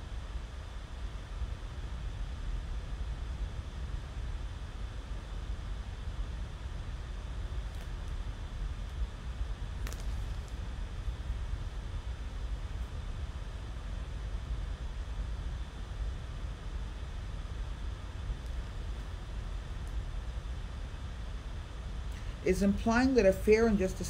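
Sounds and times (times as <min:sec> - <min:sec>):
low rumble and hiss: 0:00.0 - 0:24.0.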